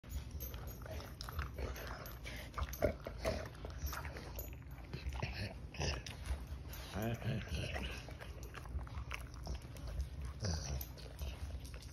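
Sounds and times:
dog chewing food: 0.0 - 11.9.

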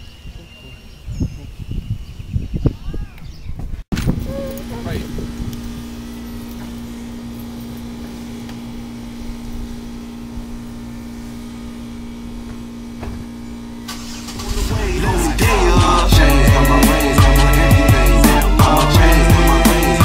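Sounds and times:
car engine idling: 4.1 - 20.0
music: 14.3 - 20.0.

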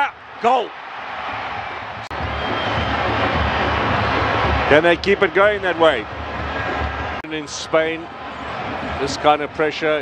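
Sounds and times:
stadium crowd din: 0.0 - 10.0.

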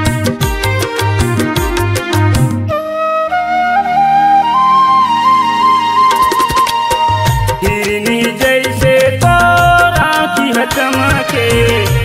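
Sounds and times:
flute melody: 0.0 - 8.5.

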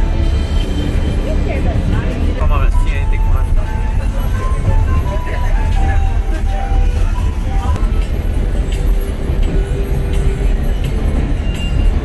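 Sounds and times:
music playing: 0.0 - 12.0
passengers talking: 0.0 - 12.0
train rumble: 0.0 - 12.0.

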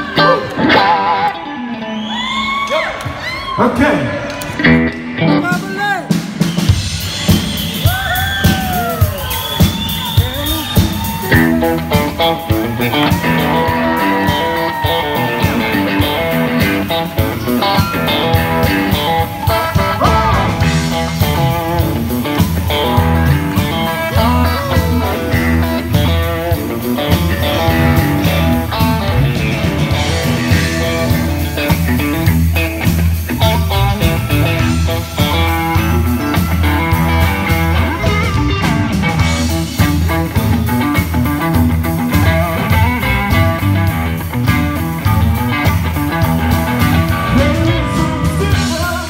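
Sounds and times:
electric guitar playing blues: 0.0 - 2.0, 4.2 - 6.4, 8.1 - 49.0.

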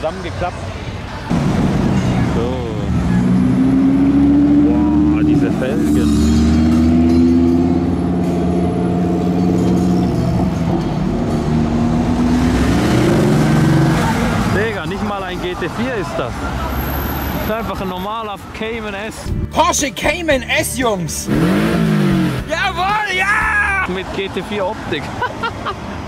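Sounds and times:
car engine accelerating past: 1.3 - 14.6.

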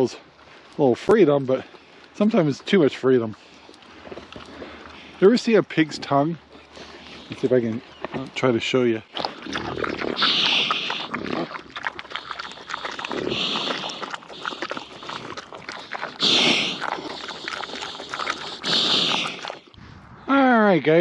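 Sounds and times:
pig crunching and chewing: 0.0 - 19.8
pig puffing through snout: 3.4 - 5.2, 6.5 - 7.4, 9.2 - 20.0.

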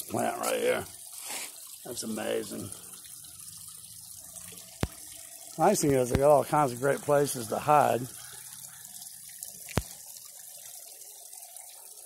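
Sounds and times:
waterfall trickling over stone: 0.0 - 12.0.

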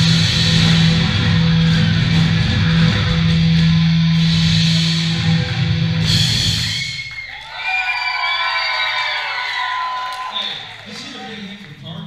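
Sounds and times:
crowd cheering and whooping: 0.6 - 11.6.

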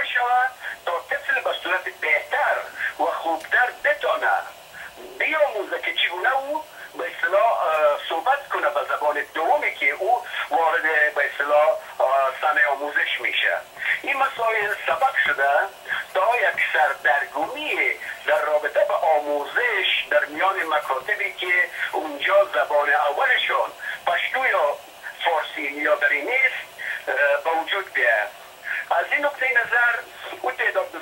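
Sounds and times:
man talking over telephone line: 0.0 - 31.0.

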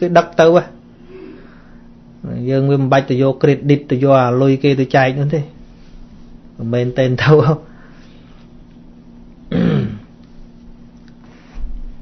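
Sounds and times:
faint steady hum: 0.0 - 12.0
man grunting: 9.5 - 10.1.

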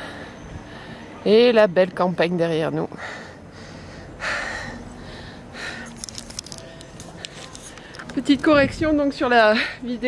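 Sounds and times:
camera handling clicks and rustles: 5.9 - 8.2.

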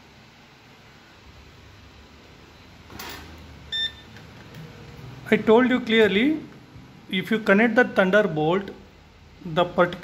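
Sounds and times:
multimeter beep: 3.7 - 4.2.

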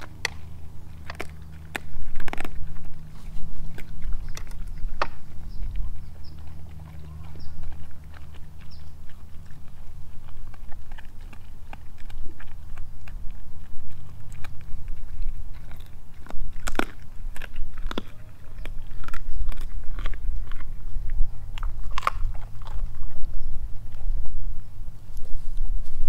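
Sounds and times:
dog chewing and crunching food: 0.0 - 26.0
steady low rumble: 0.0 - 26.0.

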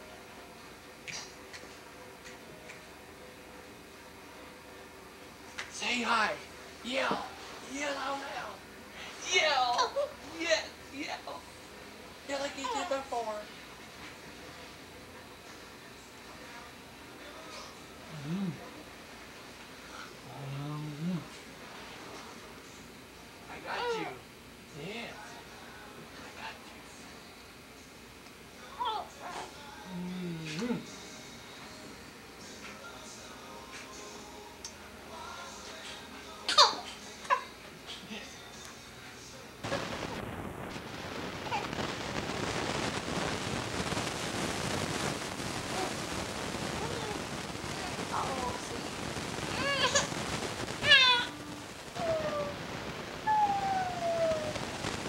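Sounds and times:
infant crying: 50.8 - 51.4.

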